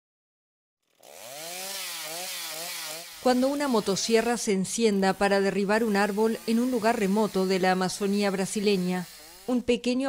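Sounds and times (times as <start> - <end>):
chainsaw running: 0.8 - 10.0.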